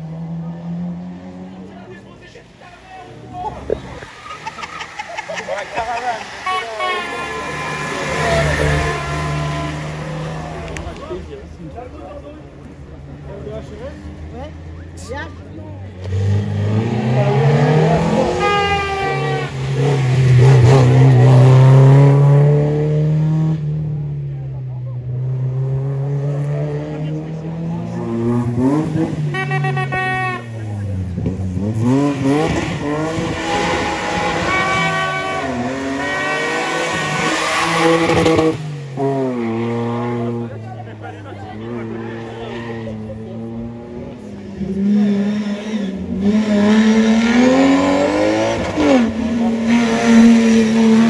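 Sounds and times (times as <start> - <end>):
rally car engines revving: 0.0 - 51.0
car passing and accelerating: 3.1 - 29.4, 30.5 - 51.0.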